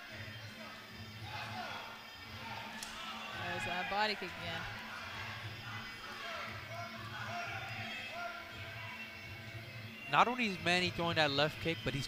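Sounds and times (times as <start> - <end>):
crowd murmuring: 0.7 - 9.4.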